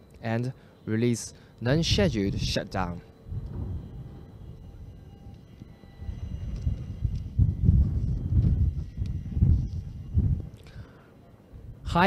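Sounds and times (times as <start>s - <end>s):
faint steady tones: 0.0s - 12.0s.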